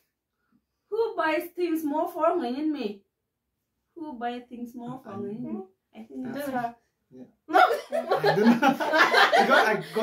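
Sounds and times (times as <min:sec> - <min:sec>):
people talking: 0:00.9 - 0:02.9, 0:04.0 - 0:06.7, 0:07.5 - 0:10.0
people laughing: 0:07.6 - 0:10.0.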